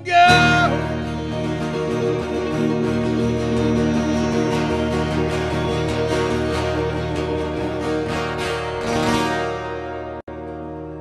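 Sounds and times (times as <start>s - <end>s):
electric and acoustic guitars ringing: 0.0s - 11.0s.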